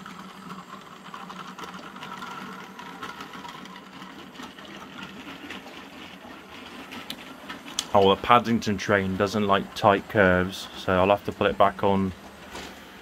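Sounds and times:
electric motor whir: 0:00.0 - 0:11.9.

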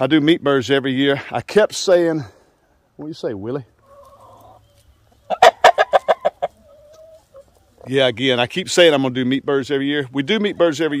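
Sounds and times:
rooster clucking: 0:03.8 - 0:08.0.

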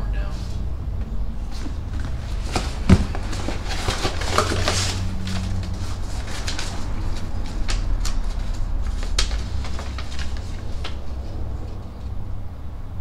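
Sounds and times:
steady low hum: 0:00.0 - 0:13.0
paper rustling and crinkling: 0:01.5 - 0:11.8.

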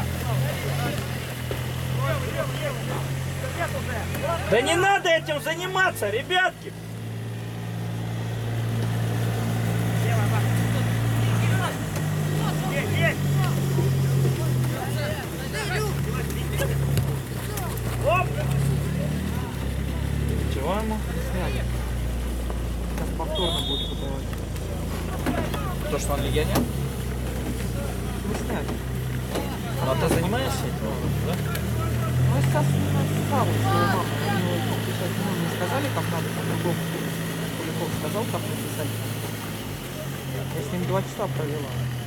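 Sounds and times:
distant shouts and calls: 0:00.0 - 0:27.2, 0:28.8 - 0:40.5.

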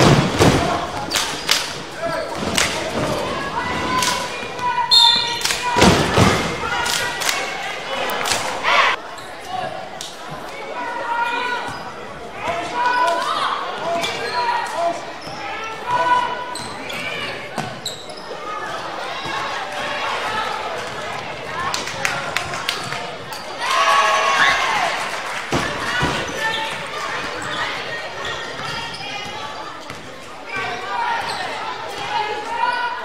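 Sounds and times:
people talking and calling out: 0:00.0 - 0:33.0.

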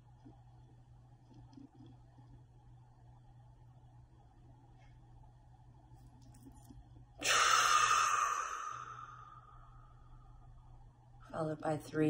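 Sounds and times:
long exhale through pursed lips: 0:07.2 - 0:09.7.

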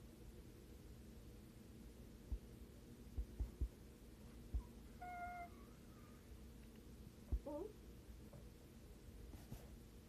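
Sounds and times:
soft low thumps: 0:02.2 - 0:03.8, 0:04.4 - 0:04.8, 0:07.3 - 0:07.6
dog whining: 0:05.0 - 0:06.2.

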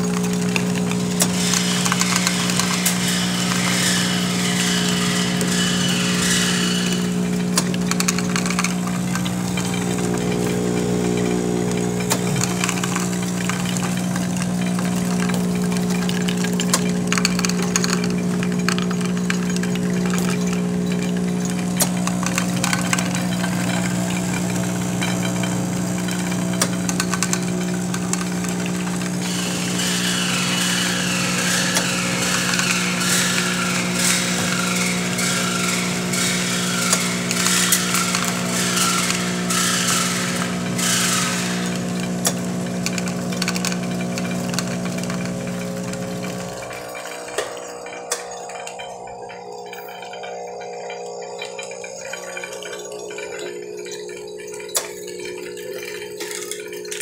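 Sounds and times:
capsules clicking into bottles: 0:00.0 - 0:57.0
machine motor hum: 0:00.0 - 0:57.0
high rattling: 0:00.6 - 0:57.0.

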